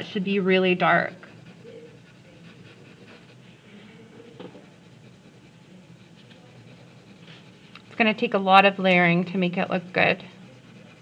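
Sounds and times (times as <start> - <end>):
pencil scratching on paper: 0.0 - 3.4, 4.0 - 11.0.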